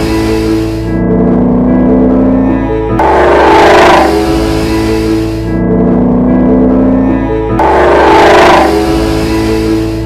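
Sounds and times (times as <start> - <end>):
car engine driving by: 0.0 - 10.0
music: 0.0 - 10.0.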